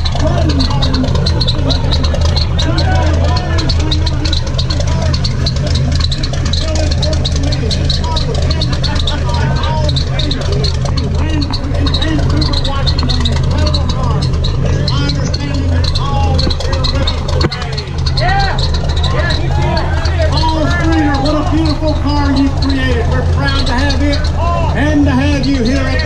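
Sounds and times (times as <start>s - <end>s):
crowd talking: 0.0s - 26.0s
engine idling: 0.0s - 26.0s.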